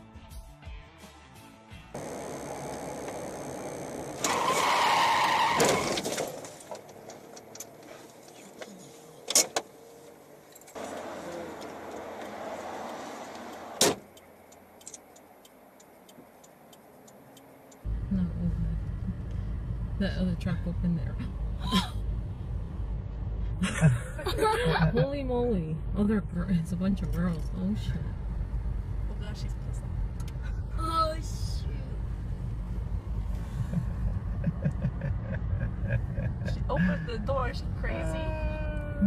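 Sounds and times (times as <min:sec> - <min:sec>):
car and road noise: 0:01.7 - 0:39.0.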